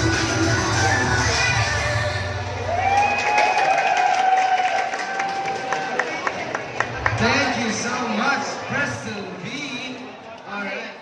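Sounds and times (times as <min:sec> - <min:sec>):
dance music: 0:00.0 - 0:03.1
audience cheering and clapping: 0:00.6 - 0:07.8.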